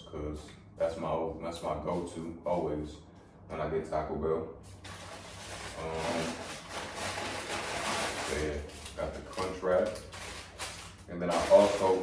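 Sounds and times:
paper bag rustling and crinkling: 4.8s - 12.0s.

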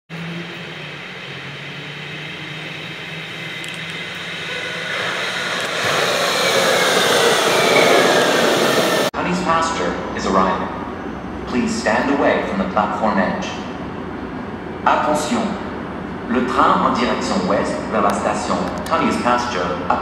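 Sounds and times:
light-rail train rolling: 0.1s - 20.0s
high whine falling in pitch: 0.2s - 9.1s.

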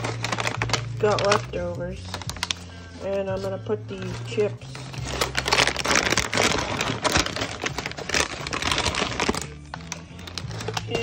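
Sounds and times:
plastic chip bag crinkling: 0.0s - 11.0s.

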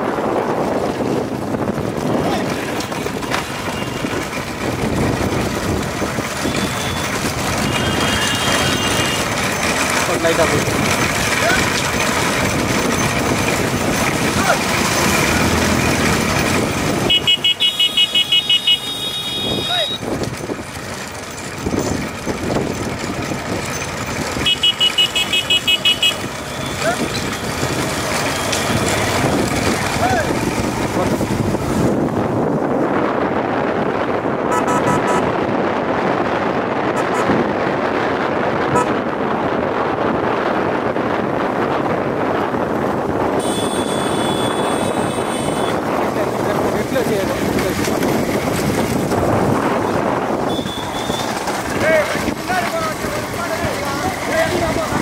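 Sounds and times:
motorcycle engines: 0.0s - 55.0s
voices calling out: 6.3s - 20.1s, 23.6s - 31.2s, 49.8s - 55.0s
horn pulsing: 6.4s - 9.4s, 17.0s - 20.0s, 24.4s - 27.5s, 34.5s - 35.3s, 43.4s - 45.9s, 50.4s - 51.4s.

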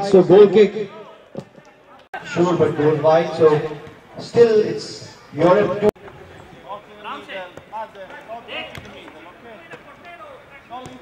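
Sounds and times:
players calling and shouting: 0.0s - 11.0s.

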